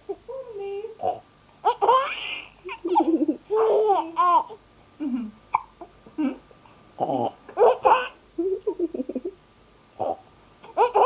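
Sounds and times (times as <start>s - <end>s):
baby laughing: 1.6s - 4.6s, 7.6s - 9.4s, 10.6s - 11.0s.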